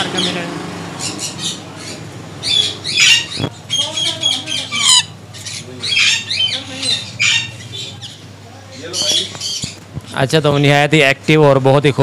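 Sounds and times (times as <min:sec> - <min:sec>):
parrots squawking: 0:00.0 - 0:10.8.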